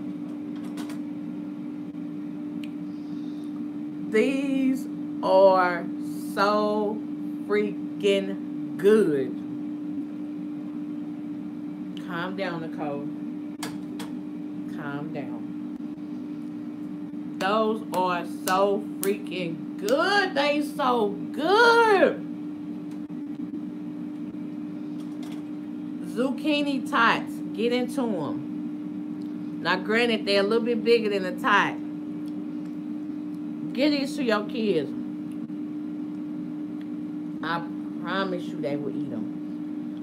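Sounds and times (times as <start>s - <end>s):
low electrical hum: 0.0s - 40.0s.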